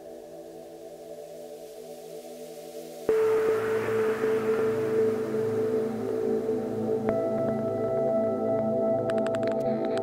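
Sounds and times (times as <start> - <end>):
low drone: 3.1 - 10.0.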